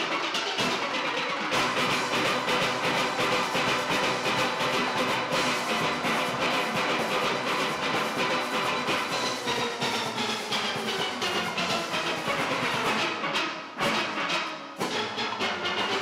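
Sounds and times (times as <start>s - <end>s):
steel orchestra playing: 0.0s - 16.0s.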